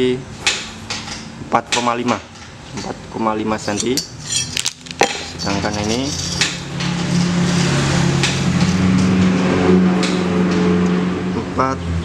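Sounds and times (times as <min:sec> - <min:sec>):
light metal clinks: 0:03.6 - 0:06.6
engine running: 0:04.5 - 0:11.6.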